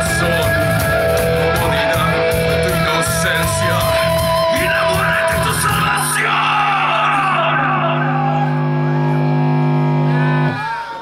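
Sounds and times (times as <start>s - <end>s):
crowd voices: 0.0s - 11.0s
rock band holding low note: 0.0s - 11.0s.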